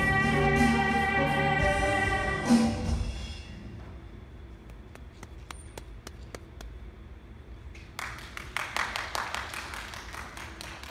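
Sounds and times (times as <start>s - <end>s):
audience clapping: 8.0s - 10.9s.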